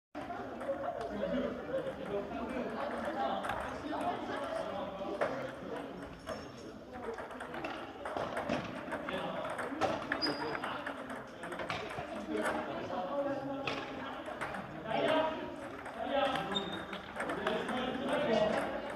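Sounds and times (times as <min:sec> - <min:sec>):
table tennis balls clicking: 0:00.2 - 0:01.2, 0:01.8 - 0:12.7, 0:13.6 - 0:18.9
many people's voices: 0:00.2 - 0:18.9.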